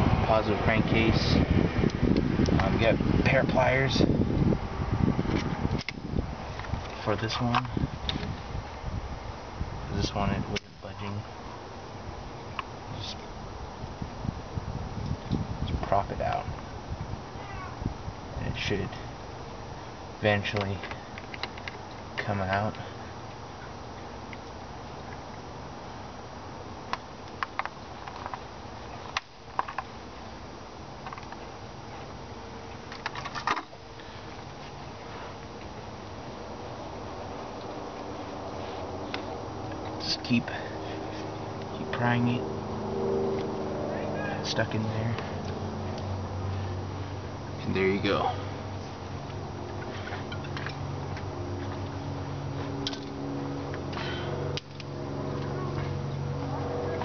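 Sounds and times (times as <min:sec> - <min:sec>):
low mechanical hum: 0:00.0 - 0:57.0.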